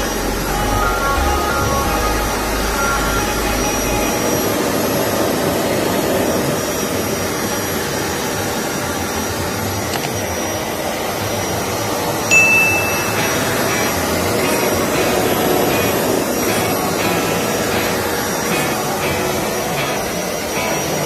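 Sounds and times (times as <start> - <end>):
short high tone: 12.3 - 21.0
carpet cleaner motor running: 13.2 - 21.0.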